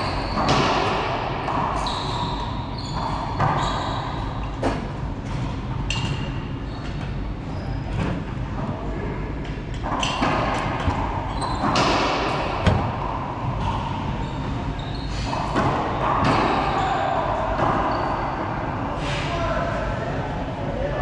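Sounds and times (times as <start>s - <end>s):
racquetball hits echoing: 0.0s - 6.4s, 9.7s - 18.5s.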